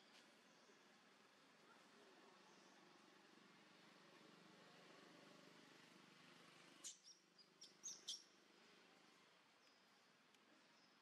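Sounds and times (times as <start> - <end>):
quiet forest background: 0.0 - 11.0
small bird chirping: 6.8 - 8.4.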